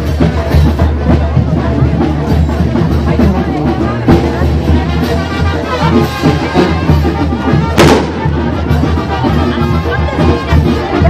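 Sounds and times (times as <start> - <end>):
brass band music: 0.0 - 11.0
loud sharp bang: 7.8 - 8.4.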